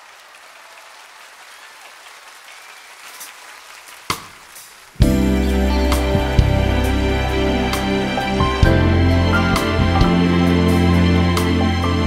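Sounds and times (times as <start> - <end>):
audience applause: 0.0 - 5.0.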